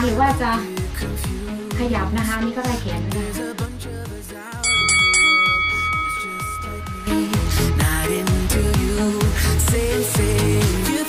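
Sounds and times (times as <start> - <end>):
upbeat music with steady beat: 0.0 - 11.0
bell chime: 4.6 - 8.3.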